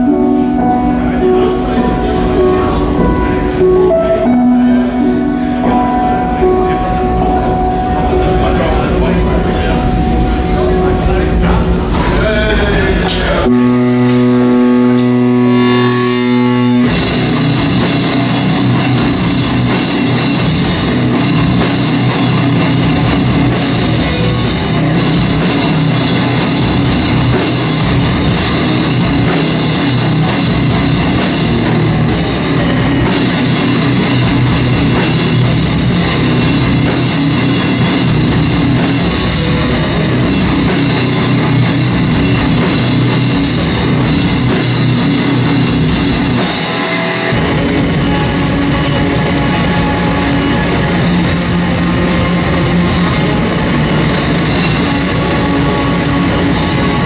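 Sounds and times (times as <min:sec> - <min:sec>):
drum kit: 0:00.0 - 0:57.0
held guitar note ringing: 0:00.0 - 0:57.0
metal band playing live: 0:00.0 - 0:57.0.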